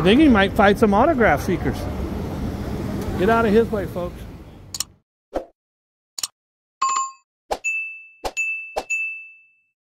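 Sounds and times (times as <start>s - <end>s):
short clicks: 4.7s - 5.0s
notification bell ding: 6.8s - 9.7s.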